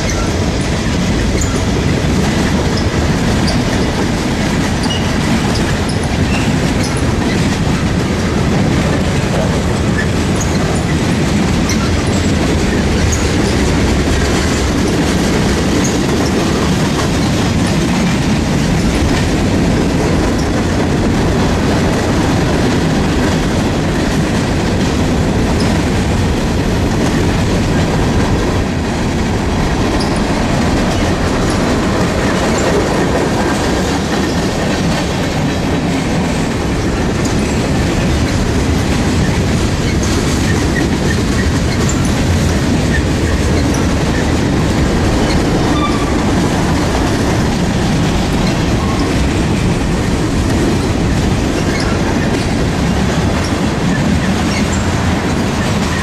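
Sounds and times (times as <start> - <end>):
clickety-clack over rail joints: 0.0 - 56.0
train wheels rumbling on rails: 0.0 - 56.0.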